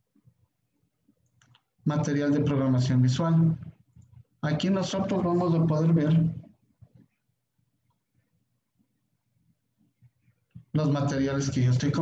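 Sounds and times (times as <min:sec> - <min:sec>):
man speaking: 0:01.8 - 0:03.8, 0:04.4 - 0:06.5, 0:10.7 - 0:12.0.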